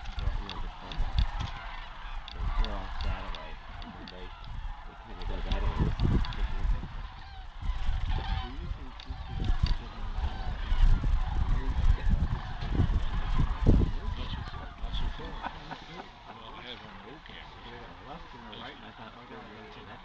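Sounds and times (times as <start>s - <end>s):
cranes calling: 0.0s - 20.0s
low rumble on microphone: 0.0s - 20.0s.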